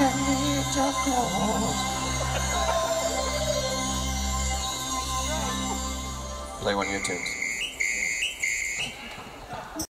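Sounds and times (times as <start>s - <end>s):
high whistle-like two-note tone: 6.7s - 9.1s.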